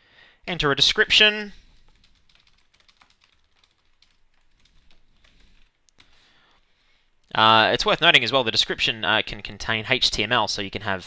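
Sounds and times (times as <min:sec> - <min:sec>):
typing on computer keyboard: 0:01.6 - 0:06.2.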